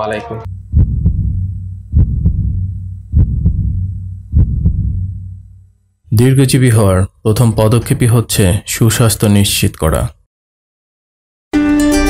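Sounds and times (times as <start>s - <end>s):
steady low hum: 0.4s - 8.0s
heartbeat thumps: 0.5s - 5.6s.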